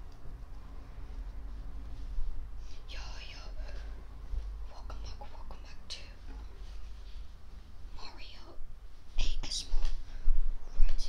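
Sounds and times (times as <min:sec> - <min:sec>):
person whispering: 0:02.7 - 0:03.8, 0:04.7 - 0:06.4, 0:07.9 - 0:08.6, 0:09.2 - 0:10.0.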